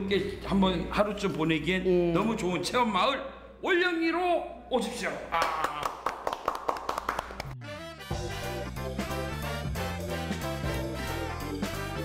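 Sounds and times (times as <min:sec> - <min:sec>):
people clapping: 0:05.3 - 0:07.6.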